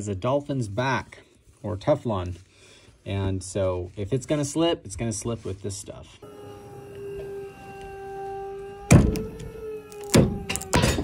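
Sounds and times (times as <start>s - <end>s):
motor whining steadily: 6.2s - 11.0s.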